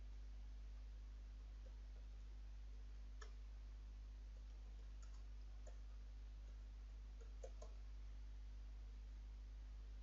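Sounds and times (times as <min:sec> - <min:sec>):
low electrical hum: 0:00.0 - 0:10.0
computer keyboard key clicks: 0:07.2 - 0:07.8.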